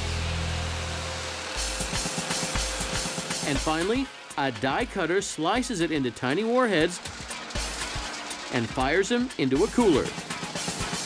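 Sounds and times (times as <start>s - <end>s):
held low bass note: 0.0s - 1.8s
pulsing beat: 1.5s - 11.0s.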